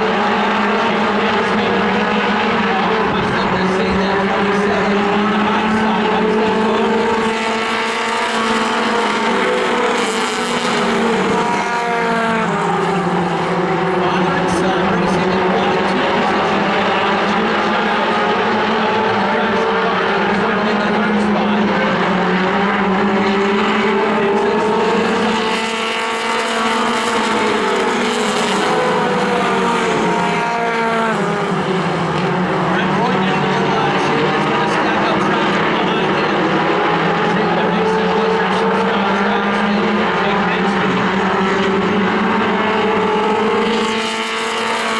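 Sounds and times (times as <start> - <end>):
racing car engines: 0.0 - 44.9.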